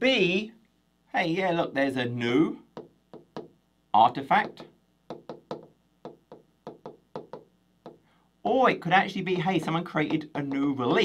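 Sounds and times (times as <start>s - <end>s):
stylus tapping on glass: 2.7s - 3.6s, 4.4s - 8.1s, 9.5s - 10.6s.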